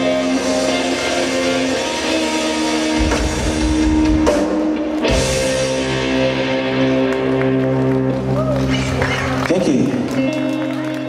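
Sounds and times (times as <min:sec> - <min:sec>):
held electric guitar notes: 0:00.0 - 0:11.0
rock band playing: 0:00.0 - 0:11.0.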